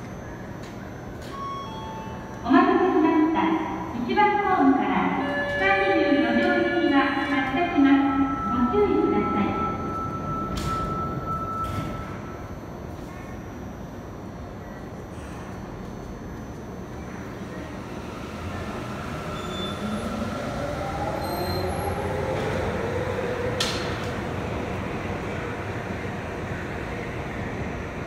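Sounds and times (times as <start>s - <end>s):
subway train running: 0.0s - 28.0s.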